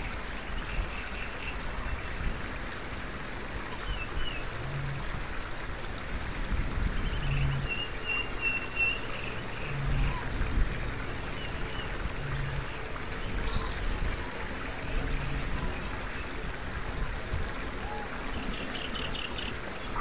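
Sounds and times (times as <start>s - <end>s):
forest ambience: 0.0s - 20.0s.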